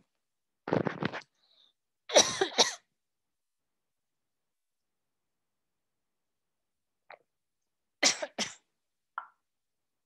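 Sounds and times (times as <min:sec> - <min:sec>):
woman coughing: 0:02.1 - 0:02.9, 0:08.0 - 0:08.7.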